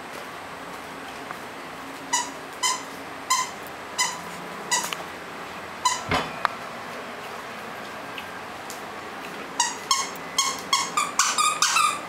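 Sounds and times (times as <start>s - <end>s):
dog squeaky toy squeaking: 2.1s - 4.9s, 5.8s - 6.1s, 9.6s - 12.0s.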